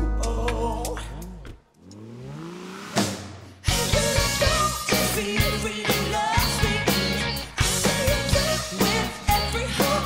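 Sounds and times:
pitched sound gliding upward: 1.8 - 3.6
rock band playing: 3.6 - 10.0.

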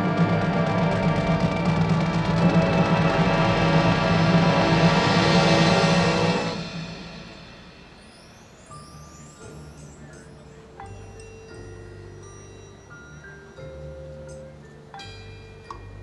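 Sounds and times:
marching band sustained chord: 0.0 - 8.2
timpani: 0.0 - 8.4.

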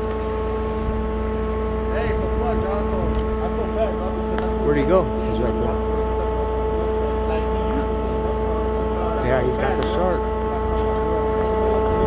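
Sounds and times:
marine machinery drone: 0.0 - 12.0.

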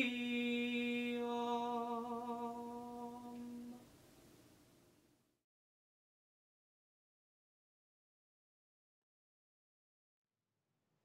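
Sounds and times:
man chanting unaccompanied: 0.0 - 3.8.

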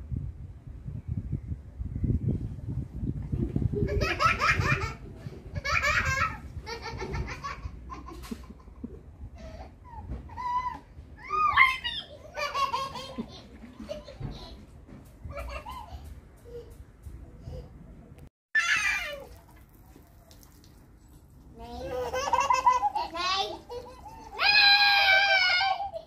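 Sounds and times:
small children laughing: 3.7 - 17.8, 21.7 - 26.0.

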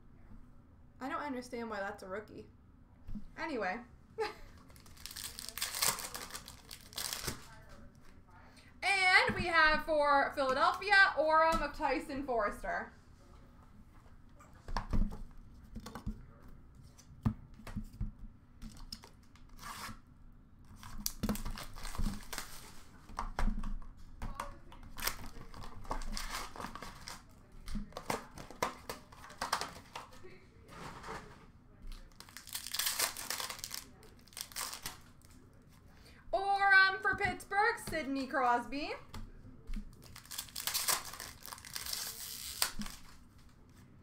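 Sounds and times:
card pack wrappers tearing: 4.6 - 7.5, 20.8 - 22.8, 32.0 - 35.3, 39.9 - 43.2.

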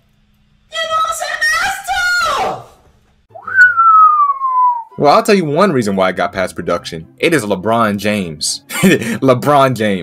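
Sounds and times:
whistled note sliding downward: 3.4 - 5.0.

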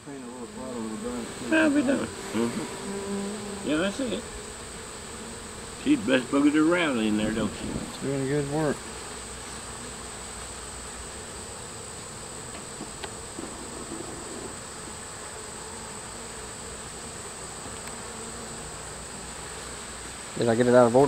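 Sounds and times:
honey bees buzzing: 0.0 - 21.0.

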